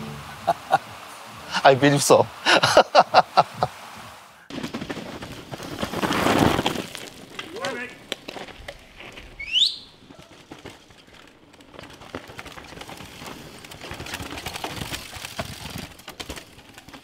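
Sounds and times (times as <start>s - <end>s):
whistle rising in pitch: 9.4s - 9.9s.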